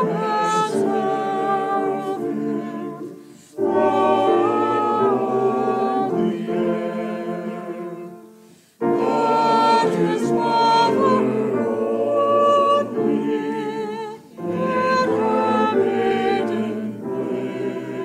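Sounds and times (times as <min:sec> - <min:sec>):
choir singing held chords: 0:00.0 - 0:18.0.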